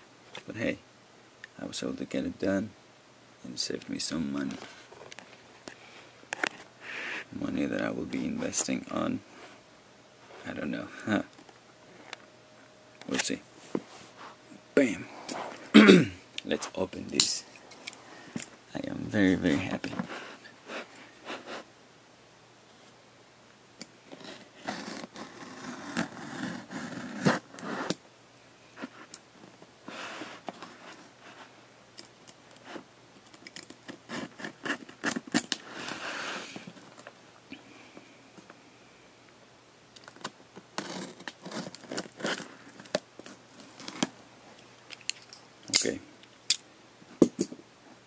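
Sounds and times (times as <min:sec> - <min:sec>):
cardboard scraping and rustling: 0:24.1 - 0:28.0, 0:40.1 - 0:44.2
packing tape cut and peeled: 0:24.2 - 0:28.0, 0:33.5 - 0:36.1, 0:40.0 - 0:42.9.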